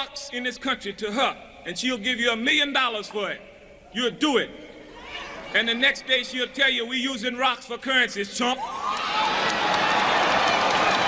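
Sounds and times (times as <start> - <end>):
crowd applauding: 8.8 - 11.0.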